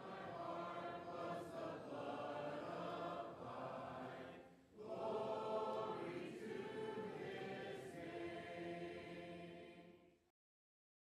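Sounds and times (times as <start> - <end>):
choir singing slow chords: 0.0 - 10.2.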